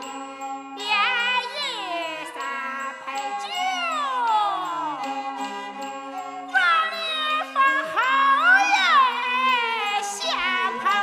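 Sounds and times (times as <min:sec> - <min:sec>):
bowed fiddle wailing phrases: 0:00.0 - 0:11.0.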